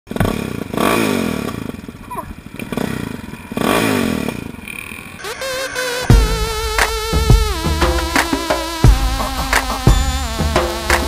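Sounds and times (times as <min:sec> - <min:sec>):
motorcycle engine revving: 0:00.1 - 0:11.0.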